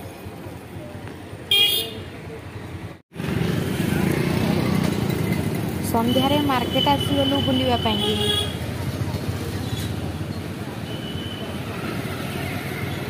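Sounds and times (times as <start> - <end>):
motorbike engine and road noise: 0.0 - 13.0
street traffic: 0.0 - 13.0
vehicle horn toot: 1.5 - 2.0.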